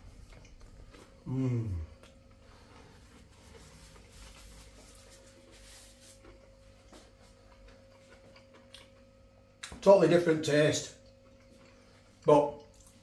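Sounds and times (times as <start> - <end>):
man chewing food: 0.0 - 9.8, 11.0 - 13.0
faint steady hum: 0.0 - 13.0.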